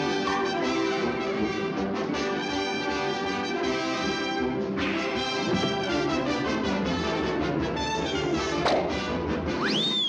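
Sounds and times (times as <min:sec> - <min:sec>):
brass playing held notes: 0:00.0 - 0:09.4
orchestral cartoon music: 0:00.0 - 0:10.0.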